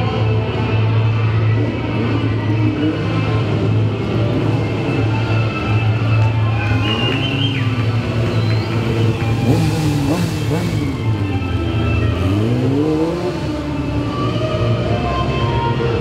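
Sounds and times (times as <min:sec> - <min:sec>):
background music: 0:00.0 - 0:16.0
motorcycle engine revving: 0:01.6 - 0:16.0.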